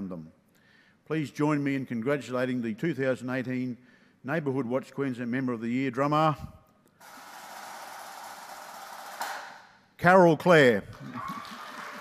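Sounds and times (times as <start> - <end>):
snare drum roll: 7.0 - 9.7.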